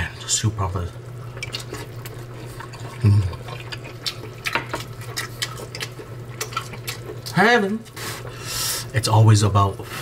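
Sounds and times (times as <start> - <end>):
steady low hum: 0.0 - 10.0
person chewing food: 1.2 - 8.7
person humming mm: 3.0 - 3.4.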